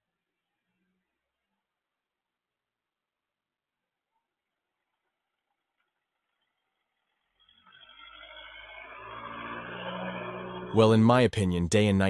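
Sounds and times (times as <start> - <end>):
vehicle engine approaching: 5.2 - 12.0.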